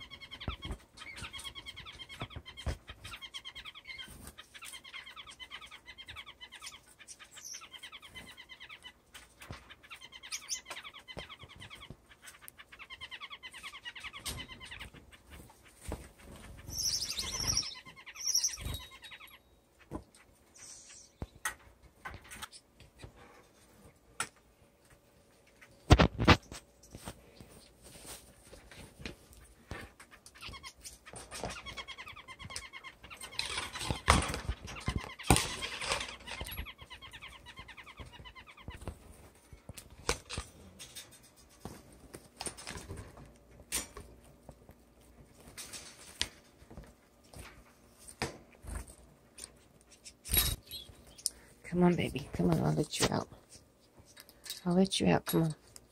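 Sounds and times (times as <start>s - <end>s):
finches chirping and singing: 0.0s - 19.6s, 30.2s - 39.1s
cage birds trilling: 0.0s - 55.6s
rustling: 25.3s - 31.9s.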